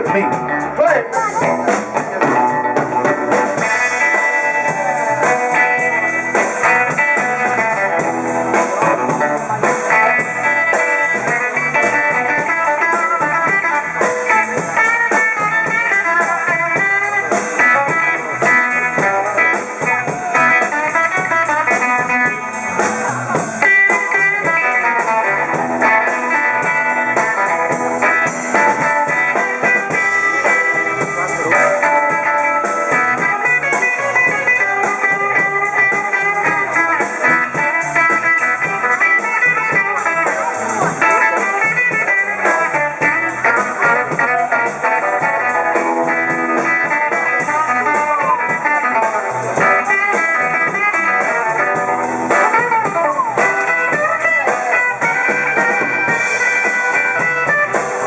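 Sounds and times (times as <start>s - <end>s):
blues band playing: 0.0s - 58.0s.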